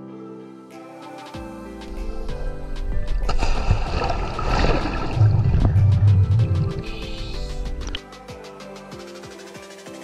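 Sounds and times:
background music: 0:00.0 - 0:10.0
heavy low rumble: 0:02.0 - 0:08.0
churning underwater bubbles: 0:02.9 - 0:08.0.

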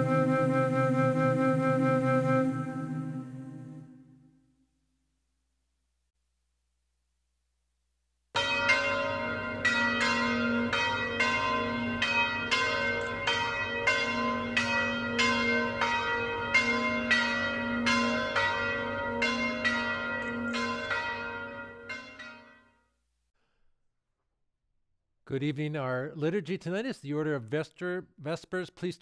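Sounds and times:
church bells ringing: 0:08.4 - 0:22.8.

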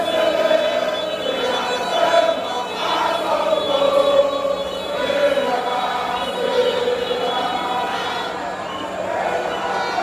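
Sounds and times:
crowd singing and chanting: 0:00.0 - 0:10.0.

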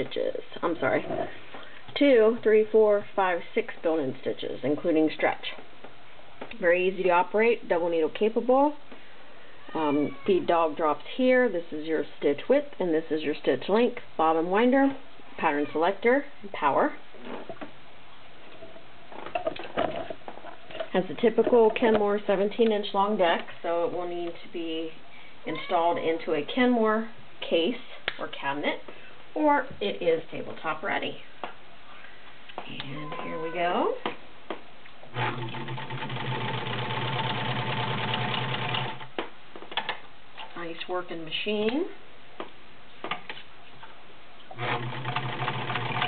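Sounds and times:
sewing machine stitching: 0:35.1 - 0:39.1, 0:44.6 - 0:46.0.

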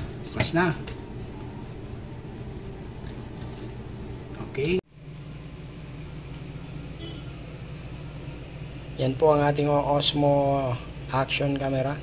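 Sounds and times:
low room hum with hiss: 0:00.0 - 0:12.0.

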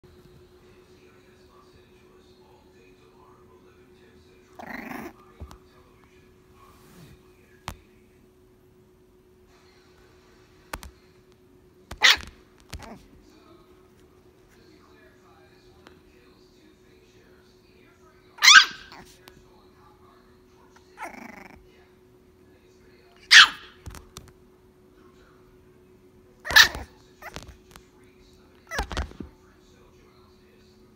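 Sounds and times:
quieter low puppy sound: 0:10.7 - 0:14.7, 0:20.8 - 0:21.7, 0:26.4 - 0:27.9
puppy barking: 0:11.9 - 0:13.0, 0:18.4 - 0:19.1, 0:23.2 - 0:23.8, 0:26.4 - 0:27.5, 0:28.7 - 0:29.1.

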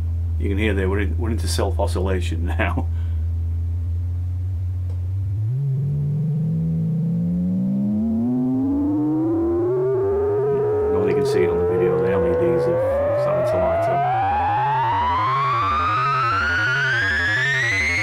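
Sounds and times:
low wobbling synth tone: 0:03.4 - 0:18.0
whistling synth tone gliding upward: 0:05.2 - 0:18.0.

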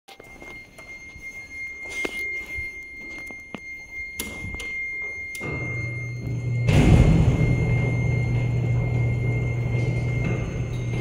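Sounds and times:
footsteps on metal-mesh floor: 0:00.1 - 0:05.2
faint steady high tone: 0:00.1 - 0:11.0
elevator machinery hum: 0:00.2 - 0:11.0.

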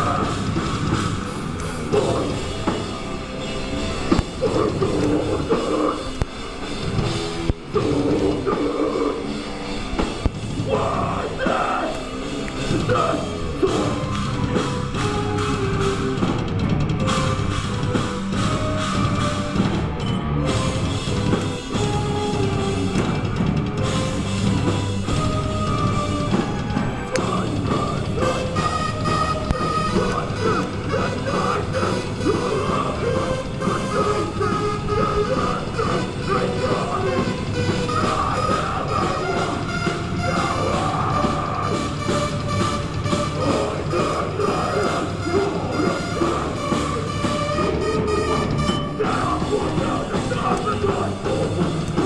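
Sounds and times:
live rock band playing: 0:00.0 - 0:52.0.

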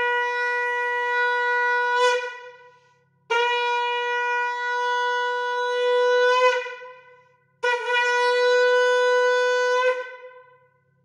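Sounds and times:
conch shell blown: 0:00.0 - 0:11.0.

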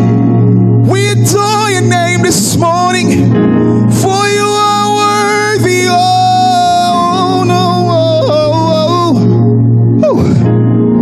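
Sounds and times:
low accompanying tone: 0:00.0 - 0:11.0
man singing a high note: 0:00.9 - 0:03.3, 0:03.9 - 0:09.3.

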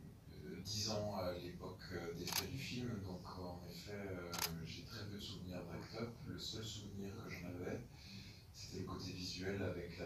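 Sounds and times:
person speaking: 0:00.4 - 0:04.9.

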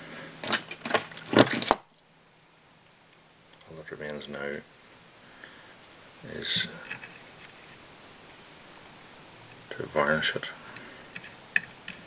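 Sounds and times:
small hard objects clattering: 0:00.4 - 0:02.0.

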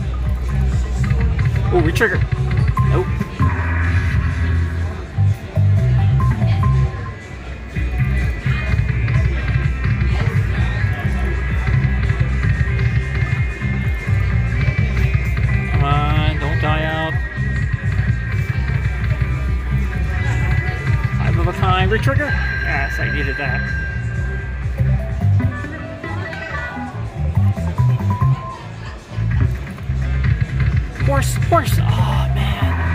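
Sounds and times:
slot machine electronic music: 0:00.0 - 0:32.9
held chime: 0:21.8 - 0:25.0.

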